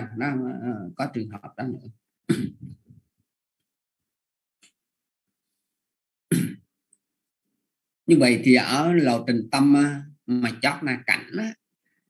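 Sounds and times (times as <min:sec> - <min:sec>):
person clearing throat: 0:02.3 - 0:02.8, 0:06.3 - 0:06.7.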